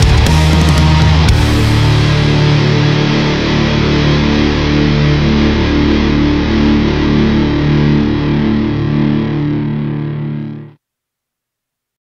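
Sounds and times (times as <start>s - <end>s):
distorted guitar and bass chord: 0.0s - 10.8s.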